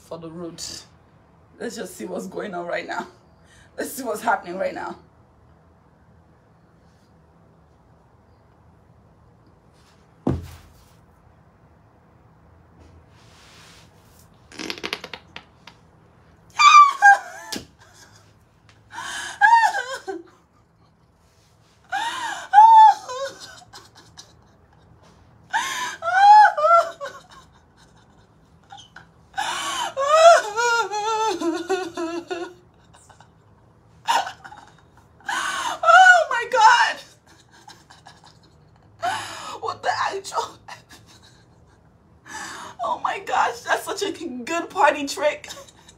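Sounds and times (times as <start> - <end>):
woman laughing: 16.6 - 18.3, 19.0 - 21.0, 21.9 - 33.5, 34.1 - 39.2, 40.4 - 41.9.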